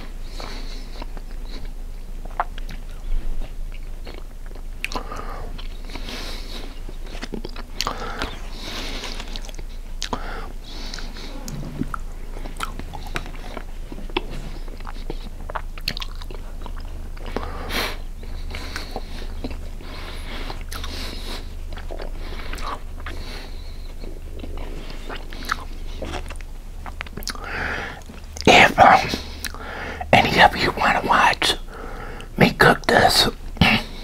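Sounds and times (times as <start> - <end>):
close-miked chewing: 0.0 - 34.0
wet mouth clicks and smacks: 20.5 - 21.0, 24.4 - 29.7.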